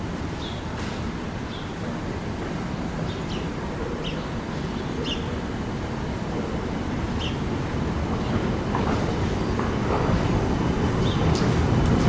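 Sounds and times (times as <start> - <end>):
trolleybus rumble over cobblestones: 0.0 - 12.0.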